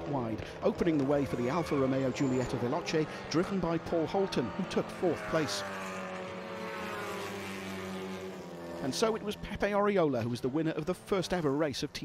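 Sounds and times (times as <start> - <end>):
race car engine at high revs: 0.4 - 11.5.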